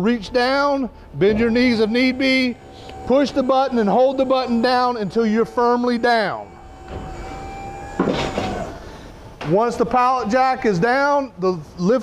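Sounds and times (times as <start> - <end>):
hydraulic lift gate humming: 0.0 - 10.8
noisy hydraulic burst: 1.0 - 9.4.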